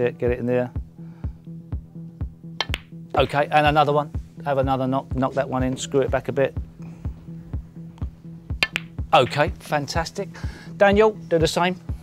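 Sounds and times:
music with steady beat: 0:00.2 - 0:12.0
snooker cue and balls striking: 0:02.6 - 0:03.0, 0:08.5 - 0:09.6.

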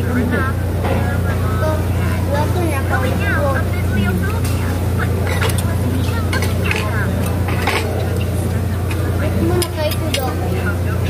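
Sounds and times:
people chatting: 0:00.0 - 0:11.0
steady low hum: 0:00.0 - 0:11.0
cutlery clinking on dishes: 0:04.4 - 0:10.4.

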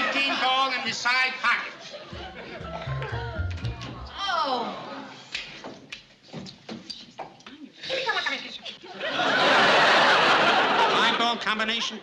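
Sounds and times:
studio audience laughing: 0:01.7 - 0:03.2, 0:07.9 - 0:12.0.

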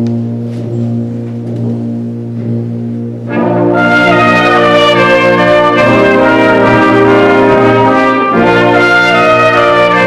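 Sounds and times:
brass band sustained chord: 0:00.2 - 0:10.0.

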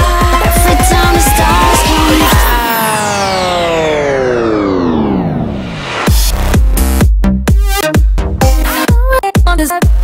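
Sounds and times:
synthesizer chord sliding down: 0:00.0 - 0:07.0.

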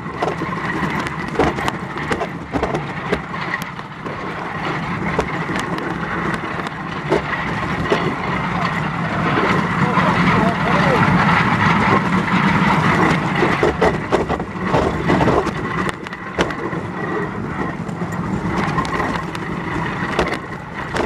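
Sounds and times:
sled runners scraping on ice: 0:00.0 - 0:21.0
sharp knocks from sled: 0:00.2 - 0:03.3.

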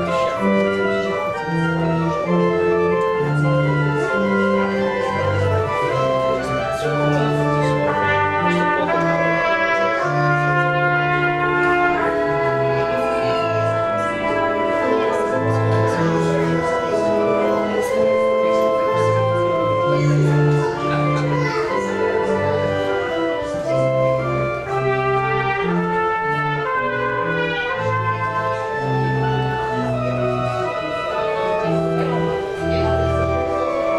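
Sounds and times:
church organ chords: 0:00.0 - 0:33.9.

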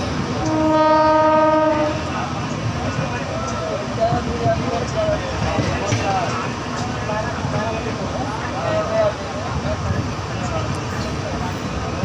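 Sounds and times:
train rumbling on track: 0:00.0 - 0:12.0
train horn: 0:00.4 - 0:02.1.

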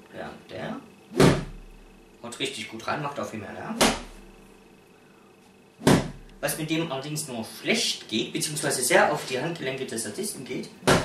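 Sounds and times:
cane striking a cushion: 0:01.1 - 0:01.8, 0:03.8 - 0:04.3, 0:05.8 - 0:06.3.

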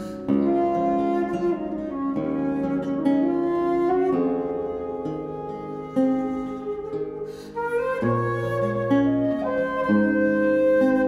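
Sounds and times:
flute playing slow melody: 0:00.0 - 0:11.0.

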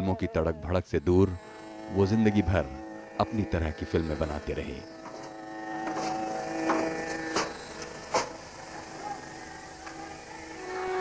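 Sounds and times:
droning musical note: 0:00.9 - 0:11.0.

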